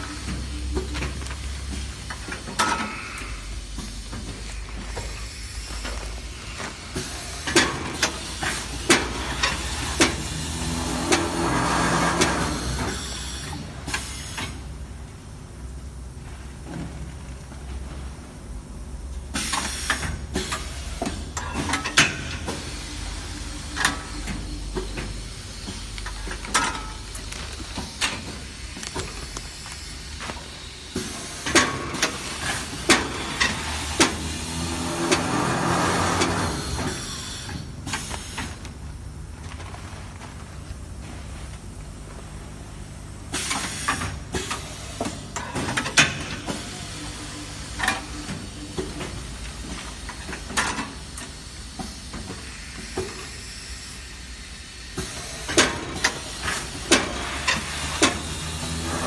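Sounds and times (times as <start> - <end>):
pneumatic grippers clicking: 0.0 - 14.8, 19.3 - 38.8, 43.3 - 54.0, 54.9 - 59.0.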